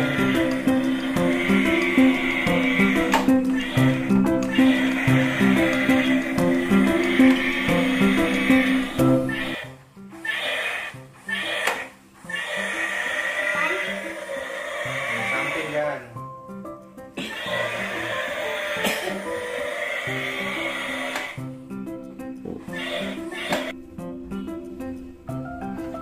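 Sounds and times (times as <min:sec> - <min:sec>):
music with stepping melody: 0:00.0 - 0:10.2, 0:20.5 - 0:26.0
toy fan motor whirring: 0:00.0 - 0:15.9, 0:17.3 - 0:21.4, 0:22.7 - 0:23.8.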